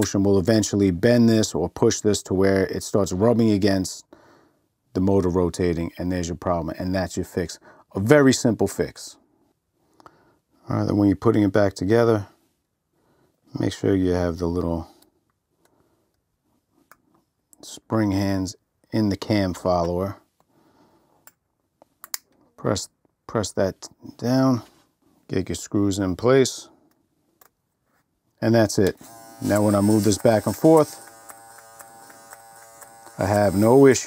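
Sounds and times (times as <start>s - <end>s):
hair clipper motor buzzing: 28.9s - 34.0s.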